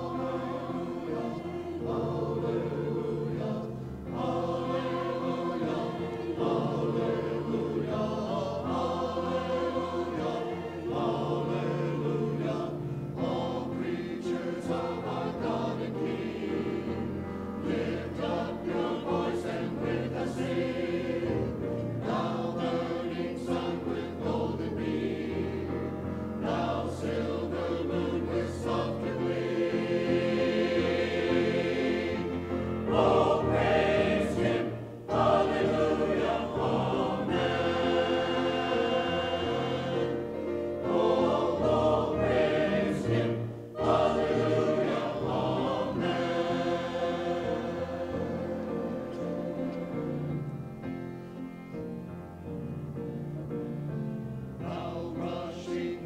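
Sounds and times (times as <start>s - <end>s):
mixed choir singing: 0.0s - 51.4s, 53.9s - 56.0s.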